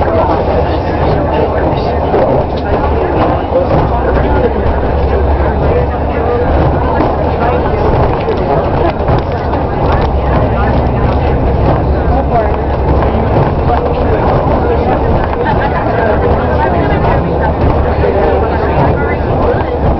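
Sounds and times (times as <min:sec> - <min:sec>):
bus engine and road rumble: 0:00.0 - 0:19.9
passengers chattering: 0:00.0 - 0:19.9.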